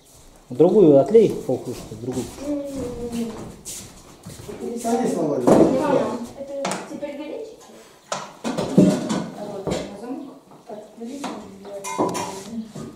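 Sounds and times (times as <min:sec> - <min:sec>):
metal dishes clinking and clattering: 0:11.8 - 0:12.4.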